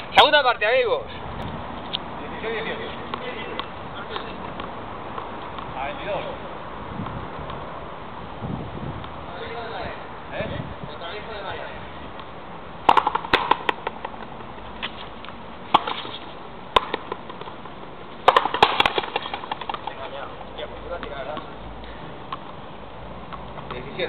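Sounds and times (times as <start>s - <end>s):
ball cracking off wall and racket: 12.9s - 13.9s, 15.7s - 16.2s, 16.8s - 17.4s, 18.2s - 20.0s.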